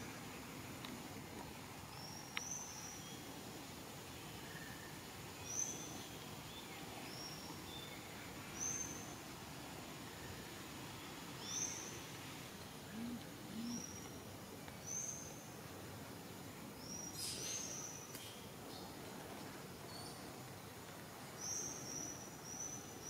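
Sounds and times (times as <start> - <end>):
steady background hiss: 0.0 - 23.0
low hooting notes: 12.9 - 13.9.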